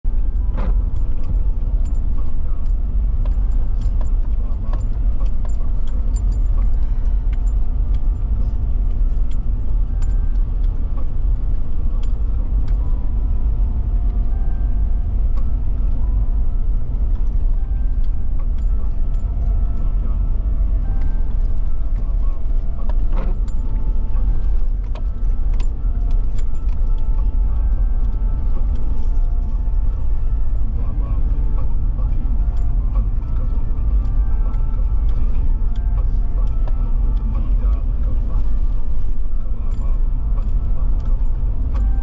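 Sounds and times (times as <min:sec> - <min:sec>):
engine and tyre rumble: 0:00.0 - 0:42.0.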